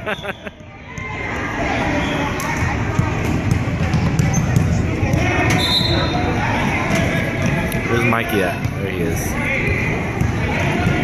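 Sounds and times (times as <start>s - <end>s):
murmur of voices: 0.0s - 11.0s
basketballs bouncing on hardwood: 2.9s - 5.6s.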